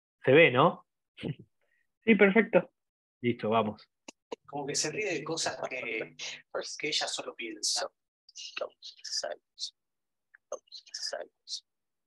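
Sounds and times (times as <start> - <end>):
person whispering: 6.2 - 9.8, 10.4 - 11.7.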